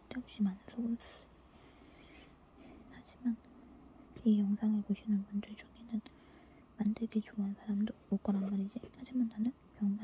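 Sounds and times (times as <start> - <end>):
woman speaking: 0.0 - 1.3, 2.9 - 3.4, 4.2 - 6.1, 6.8 - 10.0.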